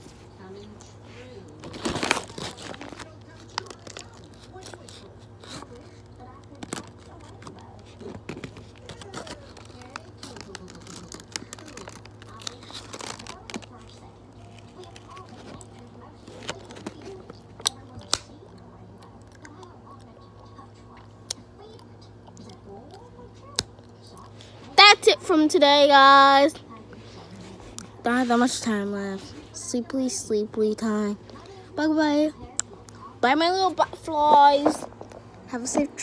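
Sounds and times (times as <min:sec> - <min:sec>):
rustling and crinkling: 0:00.0 - 0:18.2, 0:33.7 - 0:36.0.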